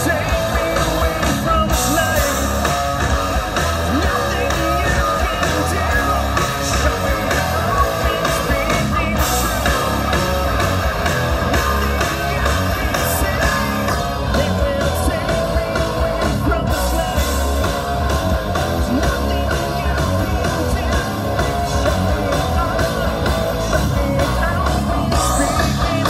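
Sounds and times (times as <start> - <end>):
bass guitar: 0.0 - 26.0
drums: 0.0 - 26.0
electric guitars: 0.0 - 26.0
singer singing: 0.0 - 26.0.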